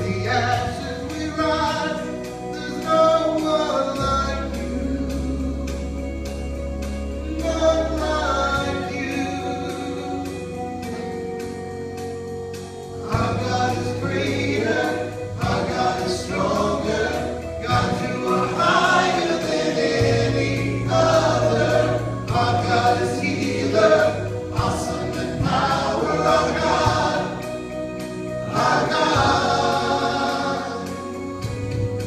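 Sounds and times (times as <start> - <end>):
voices singing together: 0.0 - 11.7, 12.6 - 32.0
acoustic guitar: 0.0 - 32.0
bass line: 0.0 - 32.0.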